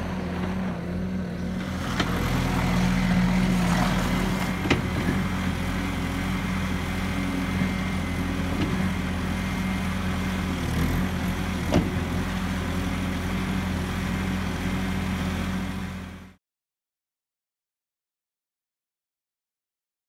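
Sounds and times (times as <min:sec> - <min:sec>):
diesel loader engine on gravel: 0:00.0 - 0:16.4.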